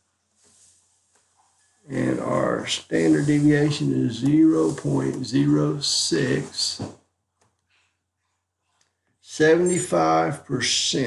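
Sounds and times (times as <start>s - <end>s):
man's voice: 1.9s - 6.9s, 9.3s - 11.0s.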